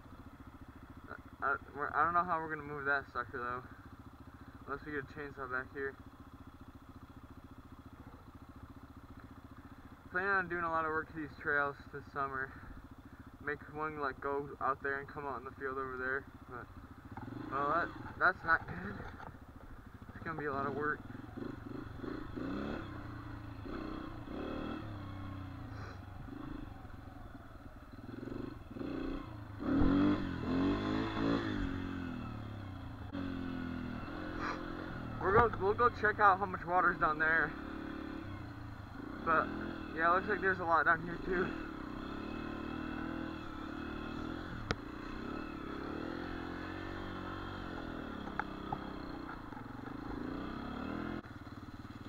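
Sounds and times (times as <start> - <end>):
dirt bike engine idling: 0.0 - 52.0.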